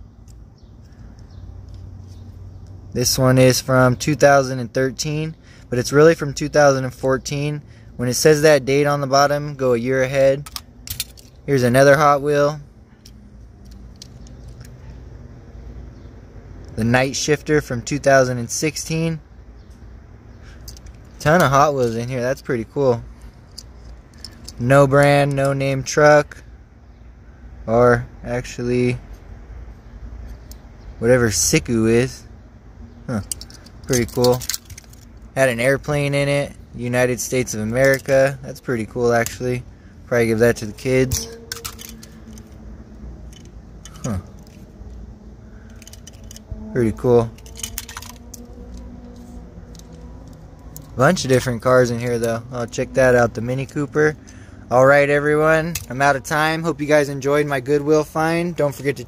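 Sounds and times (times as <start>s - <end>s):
low background hum: 0.0s - 59.0s
toy cars clicking together: 10.4s - 11.4s, 33.1s - 35.1s, 41.1s - 42.6s, 45.7s - 46.5s, 47.3s - 51.5s
toy car clicks: 41.4s - 42.5s.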